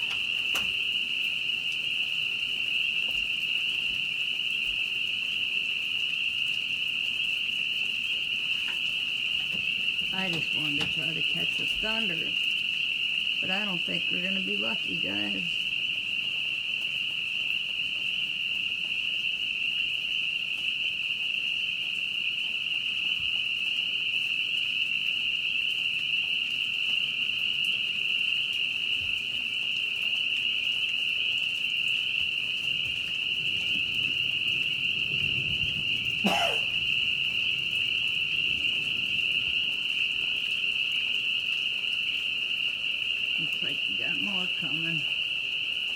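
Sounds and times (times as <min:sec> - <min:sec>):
chorus of calling frogs: 0:00.0 - 0:45.9.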